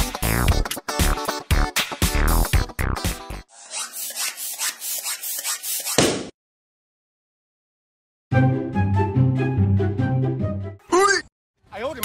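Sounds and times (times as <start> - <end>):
background music: 0.0 - 3.4, 8.3 - 10.9
hand pump rasping strokes: 3.5 - 6.0.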